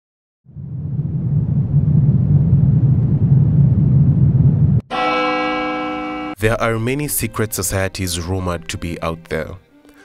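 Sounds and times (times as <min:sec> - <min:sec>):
low rumble: 0:00.4 - 0:04.9
bell-like ringing tone: 0:04.9 - 0:06.4.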